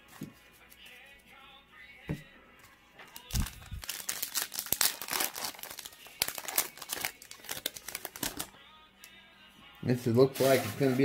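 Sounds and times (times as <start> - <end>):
foil wrapper crinkling and tearing: 3.1 - 8.6.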